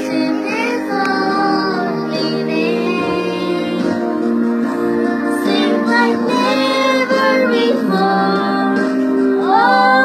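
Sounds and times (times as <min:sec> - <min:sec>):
children singing a worship song: 0:00.0 - 0:10.0
sustained backing music: 0:00.0 - 0:10.0.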